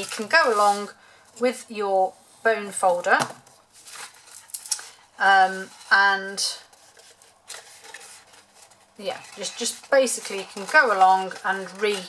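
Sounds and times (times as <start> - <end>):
cardstock rustling: 2.8 - 12.0
person speaking: 9.0 - 12.0.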